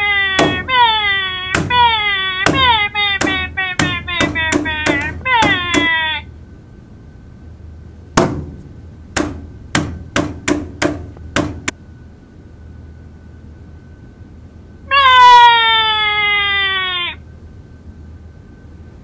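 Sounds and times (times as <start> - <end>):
sharp knocks: 0.4 - 0.8, 1.5 - 6.0, 8.2 - 11.7.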